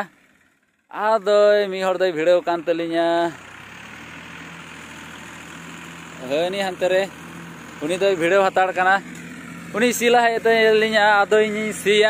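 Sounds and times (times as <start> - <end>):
distant tractor engine hum: 0.0 - 12.0
light outdoor hiss: 1.6 - 12.0.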